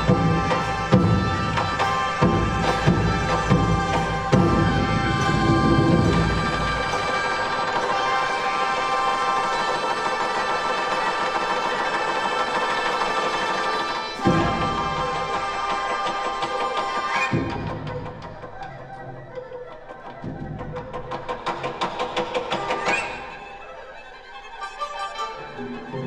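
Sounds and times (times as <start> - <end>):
held wind and string tones: 0.0 - 26.0
percussion strokes: 0.0 - 26.0.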